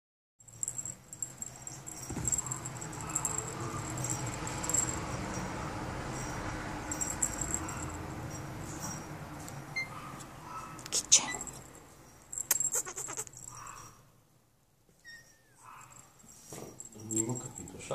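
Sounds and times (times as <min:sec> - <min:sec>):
high falling squeak: 0:12.5 - 0:13.4, 0:15.0 - 0:15.6.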